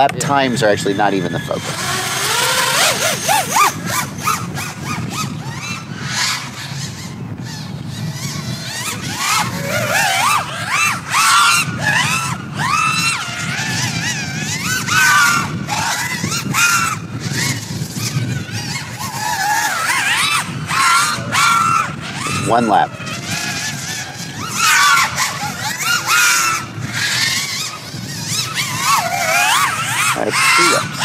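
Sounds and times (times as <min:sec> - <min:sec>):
quadcopter motors whining: 0:00.0 - 0:31.0.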